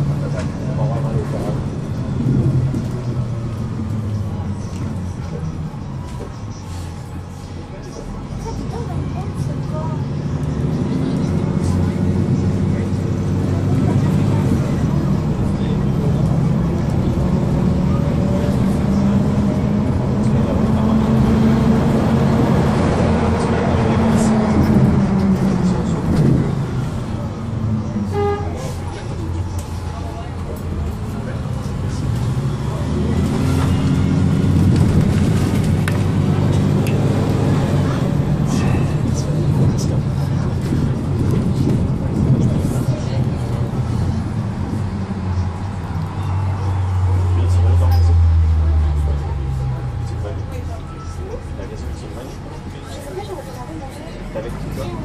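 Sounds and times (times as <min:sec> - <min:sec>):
bus diesel engine accelerating: 0:00.0 - 0:55.0.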